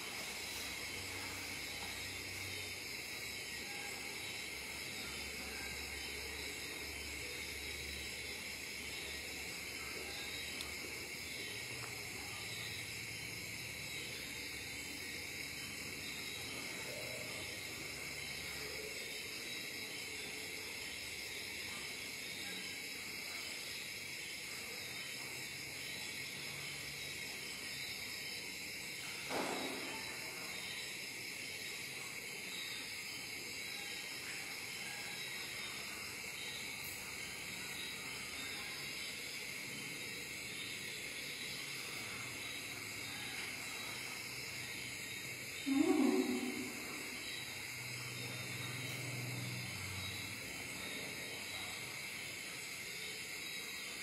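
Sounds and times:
steady background hiss: 0.0 - 54.0.

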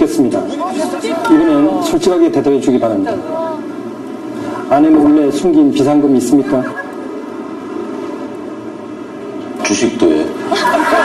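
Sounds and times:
steady hum with sustained tones: 0.0 - 11.0.

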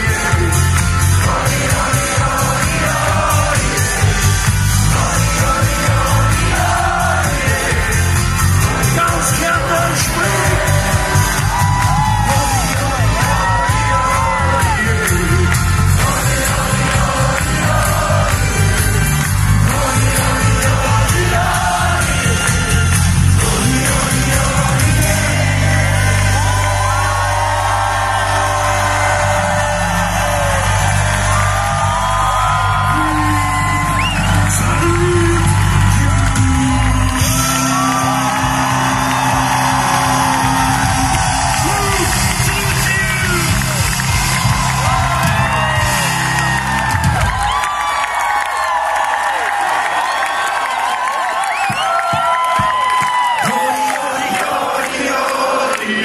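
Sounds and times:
live band playing loudly: 0.0 - 28.1, 28.9 - 47.8
crowd singing along: 0.0 - 41.8, 53.4 - 56.0
crowd shouts: 5.9 - 15.2, 25.5 - 56.0.

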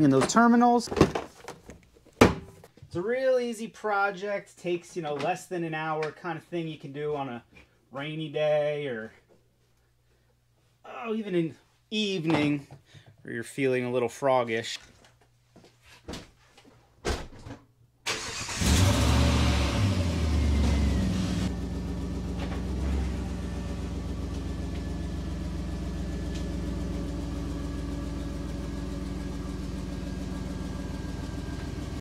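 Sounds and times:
car engine starting and idling: 18.1 - 32.0.

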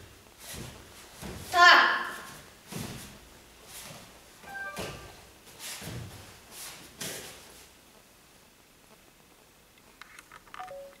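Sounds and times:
two-note electronic beep: 4.5 - 5.1.

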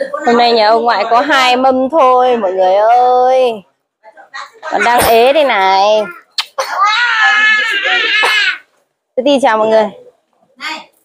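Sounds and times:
toddler crying: 5.8 - 8.6.

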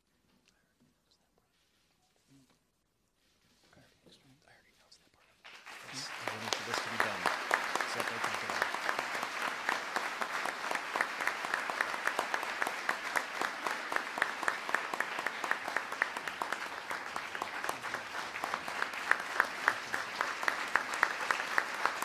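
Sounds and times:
large audience applauding: 5.4 - 22.0.

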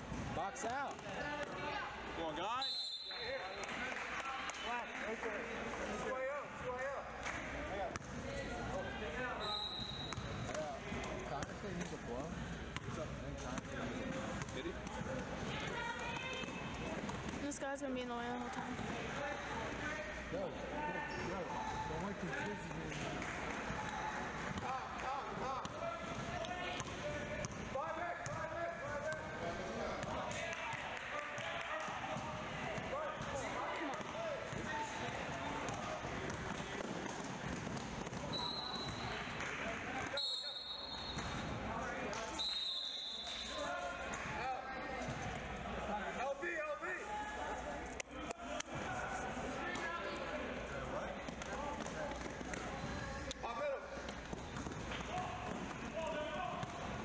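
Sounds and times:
voices of players and onlookers: 0.0 - 57.0.

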